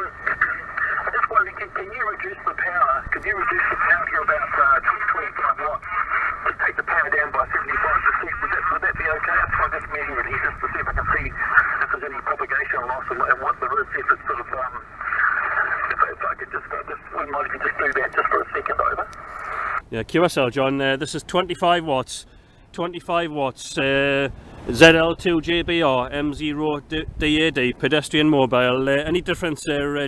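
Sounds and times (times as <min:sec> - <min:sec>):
radio band noise: 0:00.0 - 0:19.8
radio voice talking: 0:00.0 - 0:22.2.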